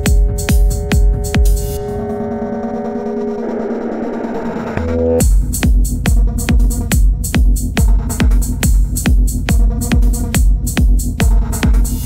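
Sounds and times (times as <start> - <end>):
held synth chord: 0.0 - 5.2.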